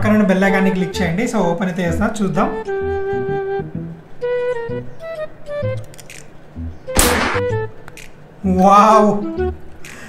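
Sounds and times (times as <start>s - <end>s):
music with flute melody: 0.0s - 6.0s, 6.6s - 10.0s.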